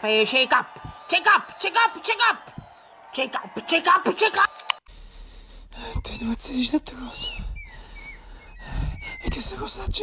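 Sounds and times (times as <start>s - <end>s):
high whistle-like chirps: 7.1s - 9.6s.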